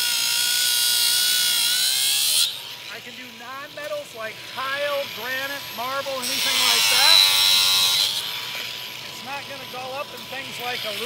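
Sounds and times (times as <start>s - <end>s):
angle grinder cutting tile: 0.0s - 11.0s.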